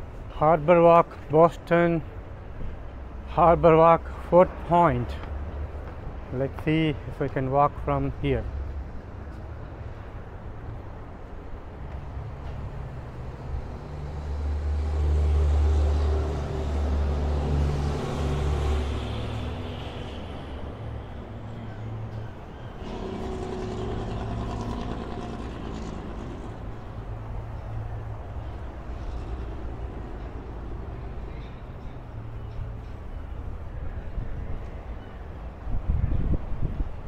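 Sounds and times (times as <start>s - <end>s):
road traffic passing: 2.0s - 35.8s
heavy vehicle engine rumble: 9.5s - 34.6s.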